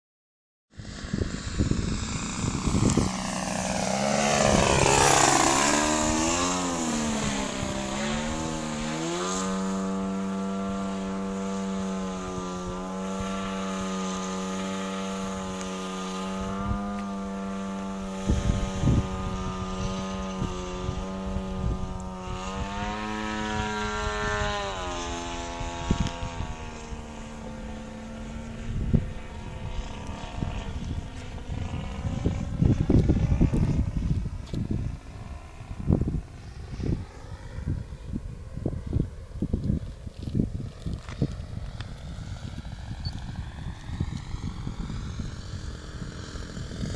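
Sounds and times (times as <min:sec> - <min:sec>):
model plane engine and propeller: 0:00.7 - 0:46.9.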